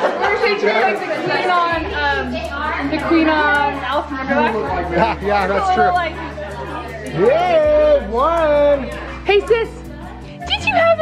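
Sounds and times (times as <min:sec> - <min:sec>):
people laughing: 0:00.0 - 0:02.3
people talking over one another: 0:00.0 - 0:11.0.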